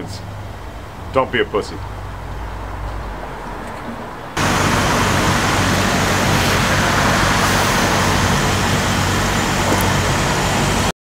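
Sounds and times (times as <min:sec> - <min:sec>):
loud rushing noise: 0:01.8 - 0:10.9
low hum: 0:01.8 - 0:10.9.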